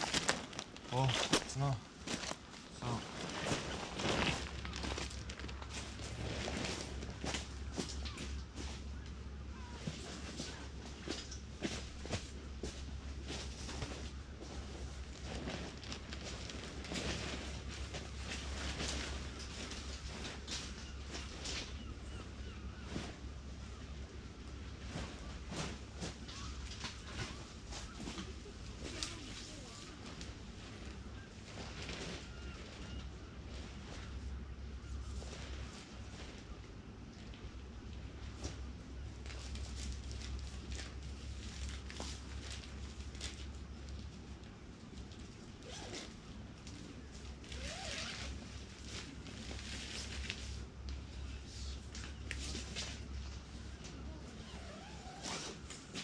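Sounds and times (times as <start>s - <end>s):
tent fabric rustling and knocking: 0.0s - 9.0s, 9.6s - 36.6s, 45.6s - 56.0s.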